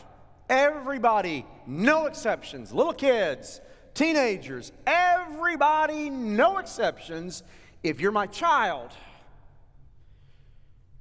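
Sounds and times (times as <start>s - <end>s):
faint breath: 7.4s - 7.8s, 10.0s - 11.0s.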